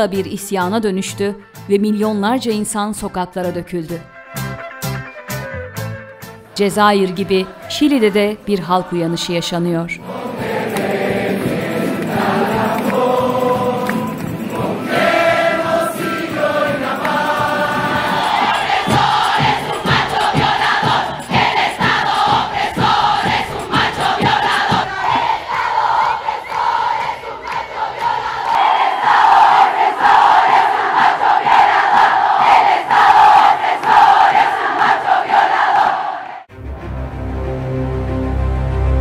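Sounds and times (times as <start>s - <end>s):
crowd chanting in unison: 6.5s - 36.5s
sharp drum strokes: 10.1s - 25.9s.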